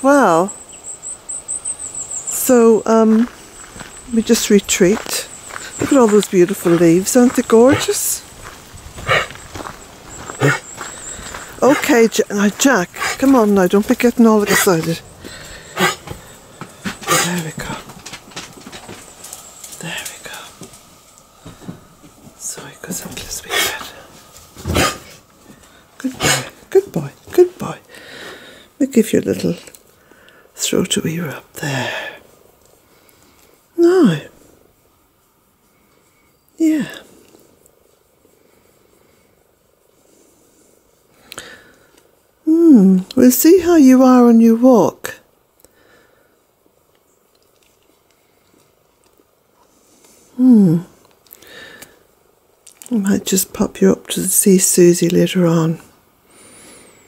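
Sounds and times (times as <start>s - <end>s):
faint low rustling: 2.2s - 27.6s
knocks and rustles: 15.3s - 22.4s, 24.2s - 25.7s.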